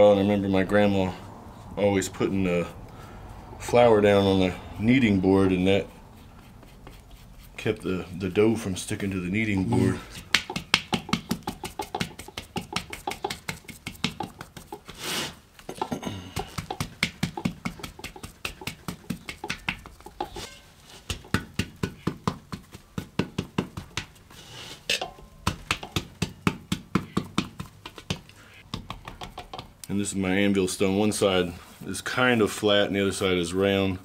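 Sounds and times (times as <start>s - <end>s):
stone tapping damp clay: 9.6s - 15.0s, 15.7s - 20.4s, 21.1s - 24.3s, 25.0s - 29.7s.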